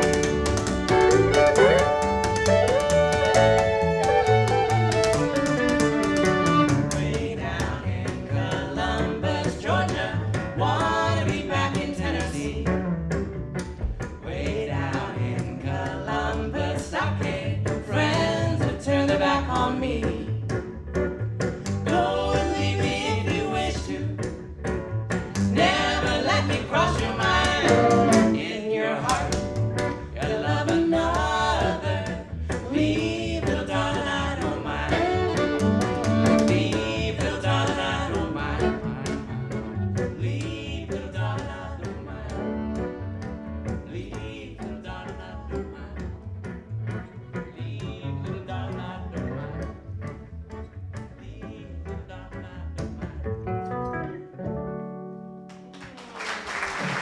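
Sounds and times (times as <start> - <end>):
fiddle playing lead: 0.0 - 6.9, 34.9 - 36.8
archtop guitar: 0.0 - 56.1
upright bass: 0.0 - 56.1
woman singing: 14.3 - 20.3, 21.9 - 24.2.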